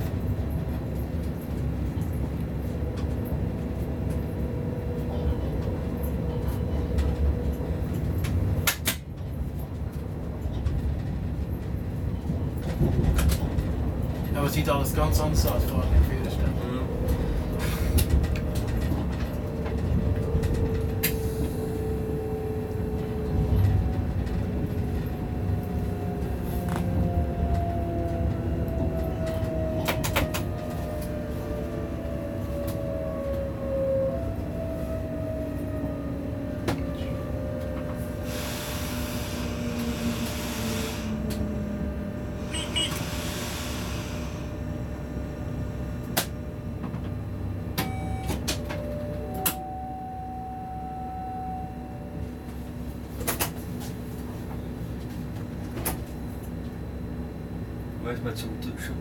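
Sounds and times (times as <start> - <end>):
locomotive running gear rumble: 0.0 - 59.0.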